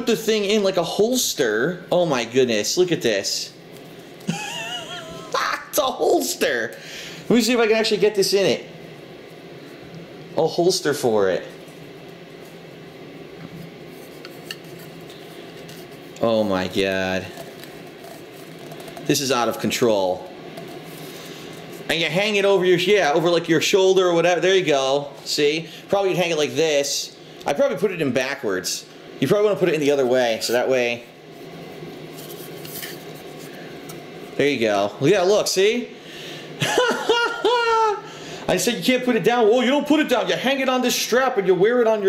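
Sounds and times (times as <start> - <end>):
low room hum: 0.0 - 42.0
soft rubbing: 11.5 - 16.2, 30.0 - 33.6.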